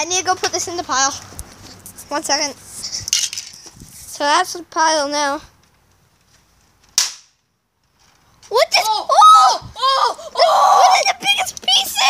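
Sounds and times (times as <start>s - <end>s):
toy blaster cracking on rock: 7.0s - 7.4s
child exclaiming loudly: 8.5s - 12.0s.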